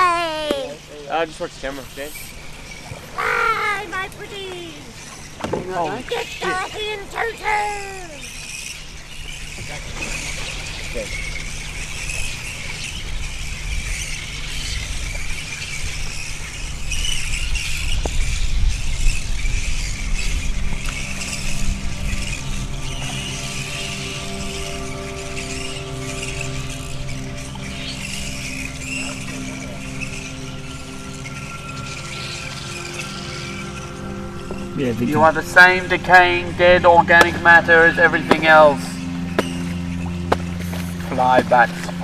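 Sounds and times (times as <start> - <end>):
sustained music chord: 0.0 - 15.3, 18.2 - 42.0
fruit bats screeching and chattering: 0.0 - 42.0.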